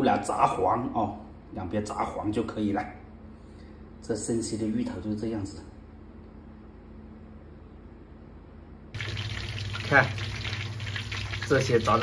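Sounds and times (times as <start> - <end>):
steady low hum: 0.0 - 12.0
oil sizzling while deep-frying: 9.0 - 12.0.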